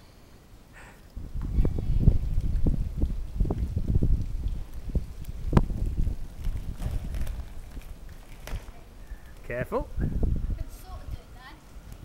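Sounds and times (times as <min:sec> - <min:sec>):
skate wheels rumbling over tarmac: 0:01.2 - 0:12.0.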